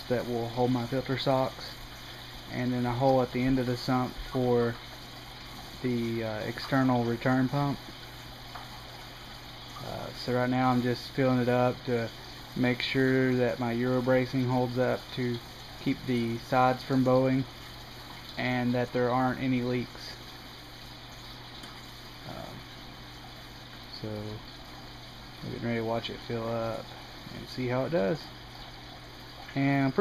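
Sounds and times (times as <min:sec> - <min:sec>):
water running into a tank: 0:00.0 - 0:30.0.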